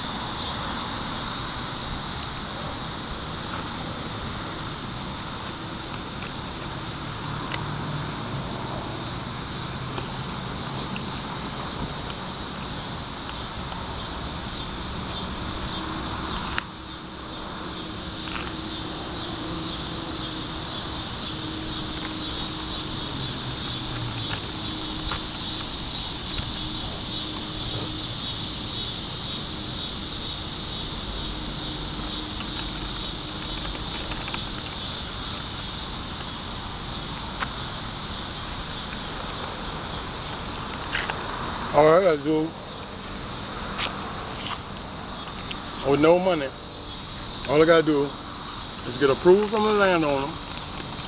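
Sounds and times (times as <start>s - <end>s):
insects buzzing: 0.0s - 51.0s.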